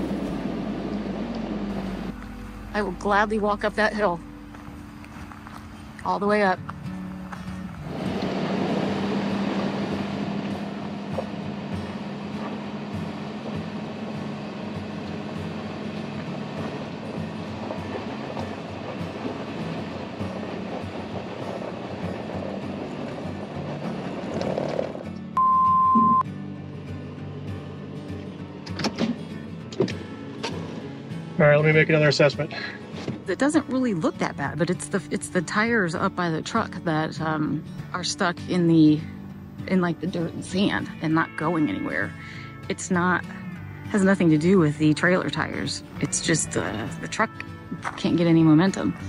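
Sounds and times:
truck engine straining: 0.0s - 26.2s
tires spinning in gravel: 7.3s - 25.3s
short electronic beep: 25.4s - 26.2s.

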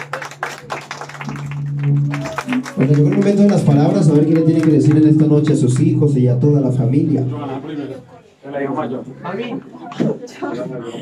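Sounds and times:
people clapping: 0.0s - 6.2s
mariachi song: 1.4s - 7.3s.

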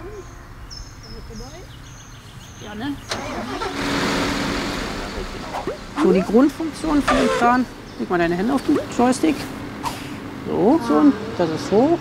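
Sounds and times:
diesel engine starting: 2.6s - 12.0s.

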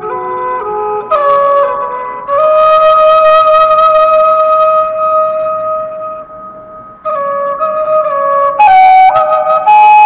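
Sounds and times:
flute holding long note: 0.0s - 10.0s.

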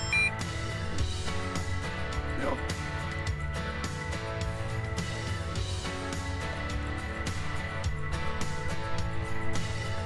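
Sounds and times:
short high electronic beep: 0.0s - 0.4s
background music: 0.0s - 10.0s.

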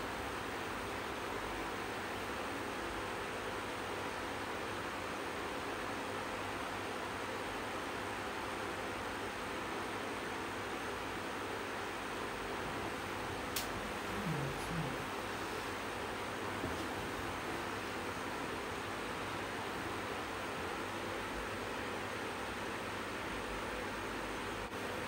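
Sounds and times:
electric fan running: 0.0s - 25.0s
sharp click: 13.5s - 13.8s.

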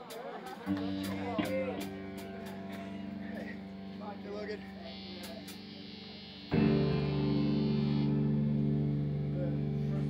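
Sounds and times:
distorted electric guitar chord: 0.7s - 10.0s.

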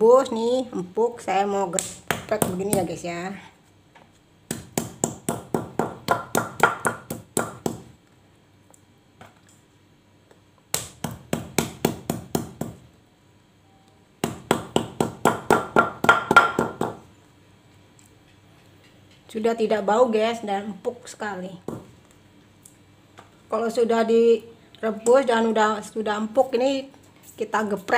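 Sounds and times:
stone pestle pounding on stone mortar: 1.8s - 2.9s, 4.5s - 7.9s, 10.7s - 12.9s, 14.2s - 17.0s.

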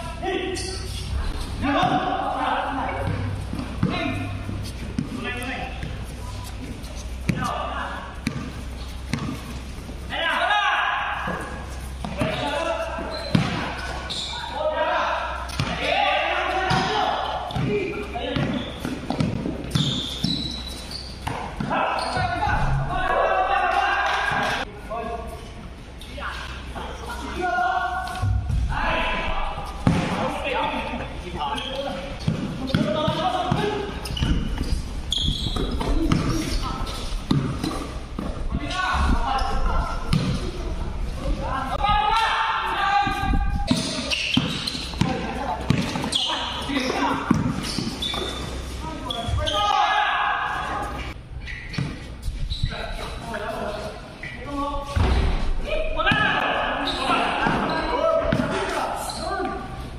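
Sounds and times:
basketball dribbling: 8.2s - 9.5s, 43.7s - 48.3s
basketball dribbling on hard court: 9.1s - 9.4s.

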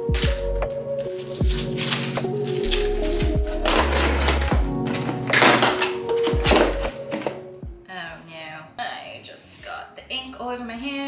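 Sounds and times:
plastic packaging crinkling: 0.0s - 7.4s
background music with low beat: 0.0s - 9.0s.

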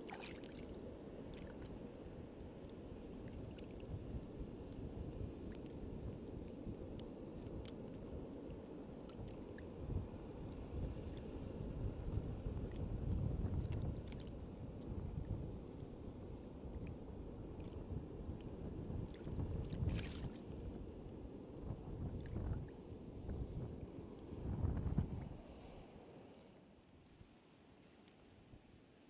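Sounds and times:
wind buffeting microphone: 9.2s - 25.4s.

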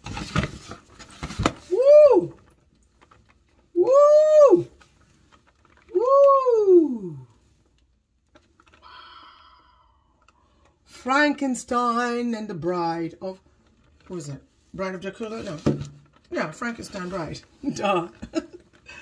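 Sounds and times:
woman exclaiming ooh: 1.7s - 2.4s, 3.8s - 4.8s, 5.9s - 7.3s.

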